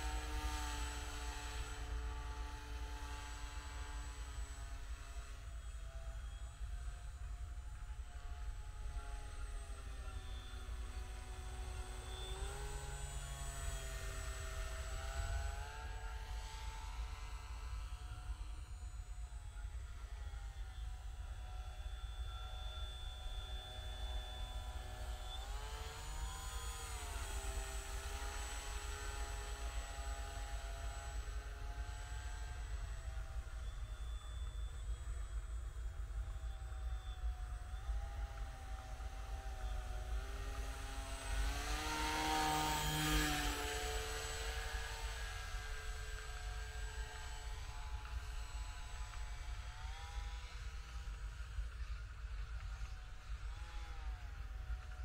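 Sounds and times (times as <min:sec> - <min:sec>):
model aircraft motor humming: 0:00.0 - 0:55.0.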